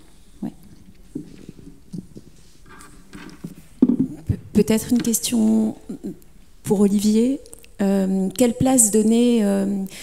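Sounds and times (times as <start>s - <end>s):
microphone knocking on table: 3.4s - 4.4s.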